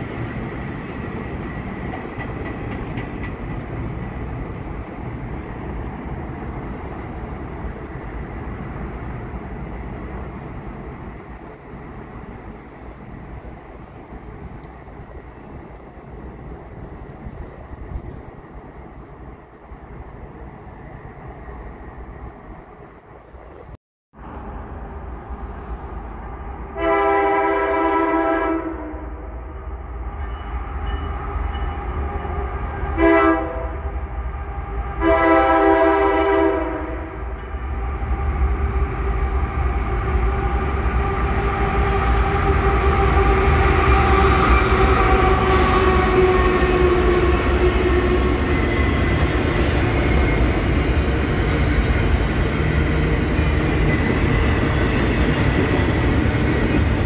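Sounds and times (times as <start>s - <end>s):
train wheel clicks: 0.9s - 3.9s
locomotive horn blasts: 26.8s - 29.2s, 31.6s - 33.9s, 34.9s - 37.2s.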